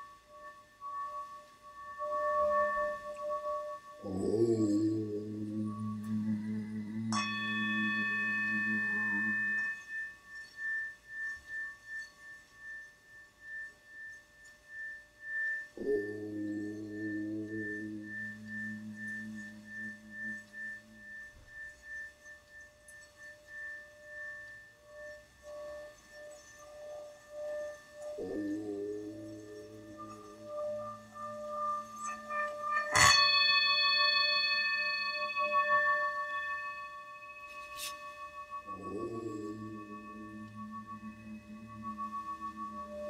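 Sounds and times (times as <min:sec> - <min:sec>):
singing bowl ringing: 0:00.0 - 0:43.0
low humming drone: 0:00.2 - 0:43.0.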